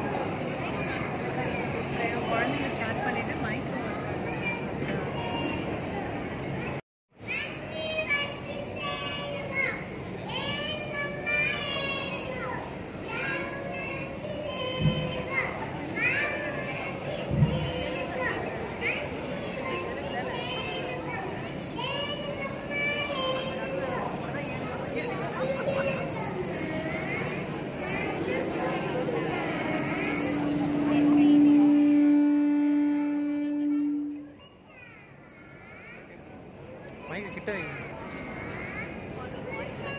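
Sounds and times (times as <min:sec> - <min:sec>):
children's voices through microphones: 0:00.0 - 0:39.9
long steady held note: 0:29.0 - 0:34.5.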